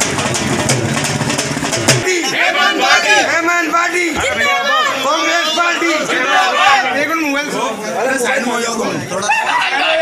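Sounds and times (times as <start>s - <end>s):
music: 0.0s - 2.2s
large drum beaten: 0.0s - 2.6s.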